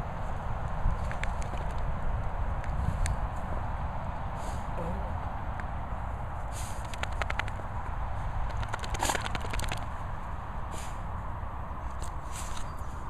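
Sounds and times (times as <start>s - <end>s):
steady low rumble: 0.0s - 13.0s
dog paws scratching dirt: 0.8s - 2.0s, 6.5s - 11.0s, 11.8s - 13.0s.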